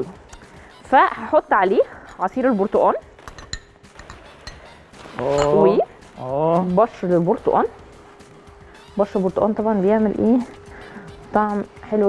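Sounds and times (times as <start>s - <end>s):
glass clinking on glass: 3.3s - 5.8s.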